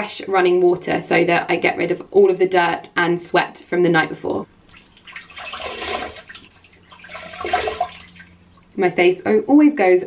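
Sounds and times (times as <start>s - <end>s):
water splashing in a bowl: 4.7s - 8.7s.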